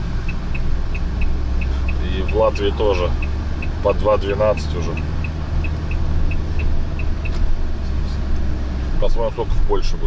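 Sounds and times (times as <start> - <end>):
light regular ticking: 0.0 - 8.6
road noise: 0.0 - 10.0
van engine drone: 0.0 - 10.0.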